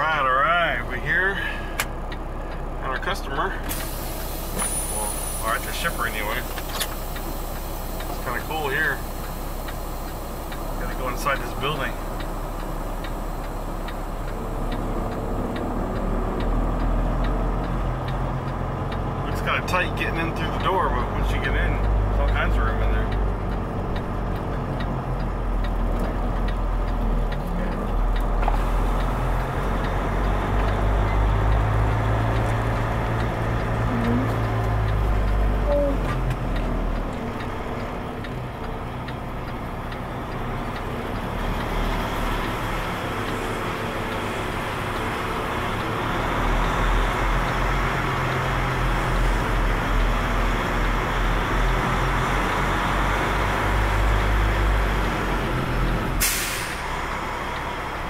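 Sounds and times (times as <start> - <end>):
diesel truck engine running: 0.0 - 58.0.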